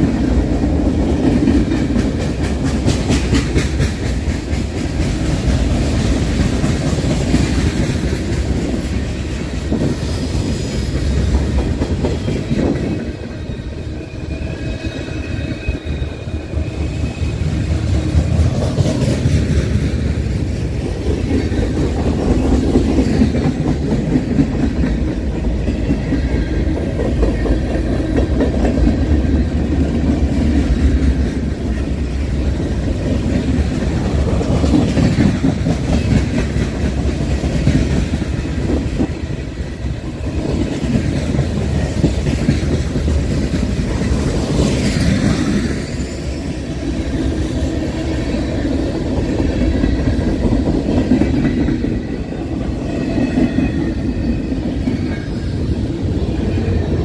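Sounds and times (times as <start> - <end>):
wheels clacking over rail joints: 0.0 - 10.1, 17.4 - 46.0
freight train wheels rumbling: 0.0 - 57.0.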